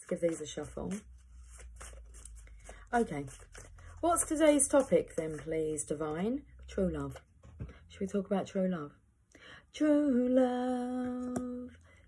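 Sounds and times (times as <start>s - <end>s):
cards being shuffled: 0.0s - 5.8s.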